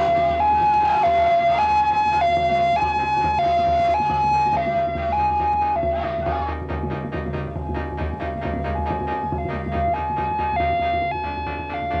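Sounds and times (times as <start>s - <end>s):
ambulance siren two-tone wail: 0.0s - 12.0s.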